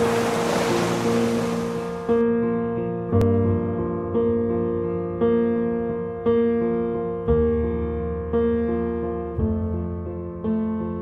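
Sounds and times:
sea surf rushing: 0.0s - 2.2s
slow piano chords: 0.0s - 11.0s.

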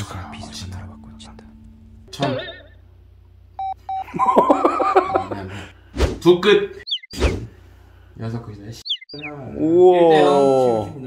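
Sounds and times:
short electronic beeps: 3.6s - 4.1s, 6.8s - 7.4s, 8.8s - 9.4s
snickering laughter: 4.1s - 5.4s.

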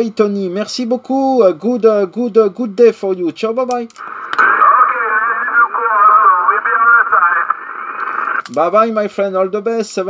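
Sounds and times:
radio band noise hiss: 4.0s - 8.5s
garbled radio voice: 4.2s - 8.4s.

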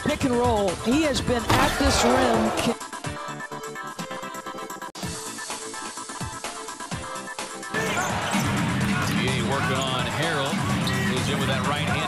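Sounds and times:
music playing: 0.8s - 12.0s
arena crowd noise: 1.5s - 2.8s.

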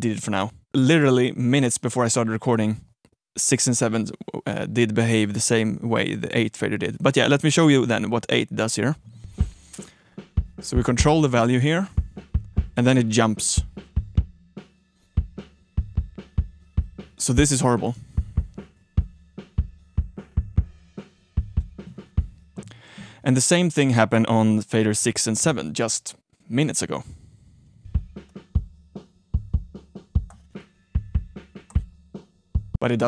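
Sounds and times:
drum kit beat: 9.3s - 23.1s, 27.9s - 33.0s
kick drum thumps: 12.0s - 12.8s, 18.2s - 19.2s.

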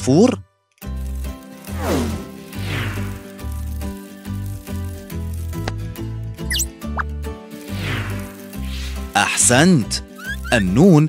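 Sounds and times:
cartoon music with pulsing bass: 6.1s - 10.9s.

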